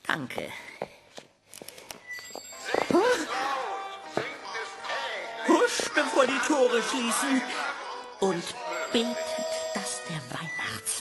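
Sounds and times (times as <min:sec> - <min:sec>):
background music: 0:02.2 - 0:11.0.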